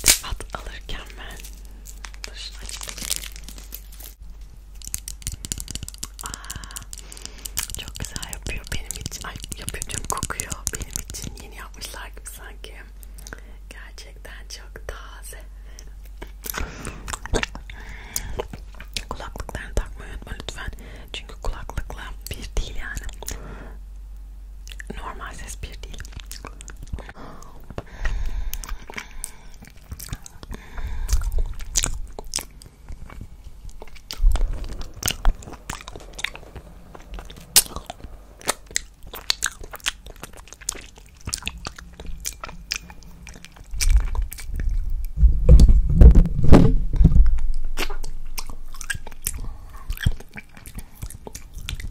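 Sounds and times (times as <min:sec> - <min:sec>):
licking and sucking hard candy: 0:00.0 - 0:11.6, 0:15.8 - 0:19.6, 0:25.8 - 0:45.2, 0:47.8 - 0:51.9
tongue clicks on candy: 0:04.8 - 0:11.4.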